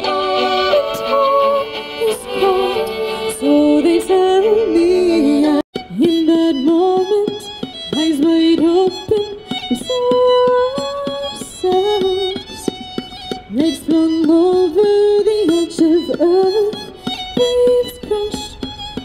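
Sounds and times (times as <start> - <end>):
woman singing: 0.0 - 12.7, 13.4 - 18.6
fiddle playing: 0.0 - 19.0.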